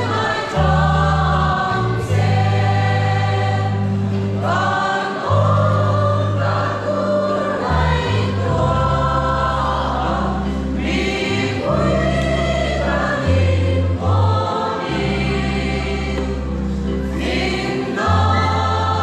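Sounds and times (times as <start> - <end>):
mixed choir singing in harmony: 0.0 - 19.0.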